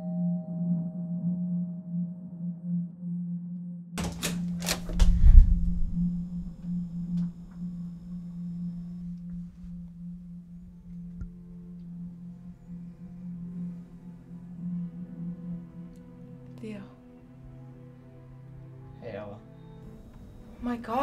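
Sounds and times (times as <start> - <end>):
low drone tone: 4.0 - 18.9.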